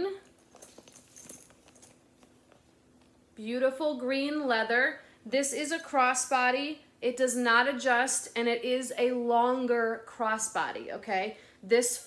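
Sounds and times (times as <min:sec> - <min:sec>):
metal strap clasps clinking: 0:00.2 - 0:02.4.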